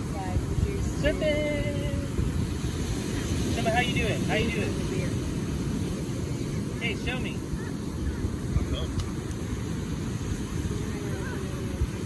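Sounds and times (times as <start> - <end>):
breaking surf: 0.0 - 12.0
wind rumble on microphone: 0.0 - 12.0.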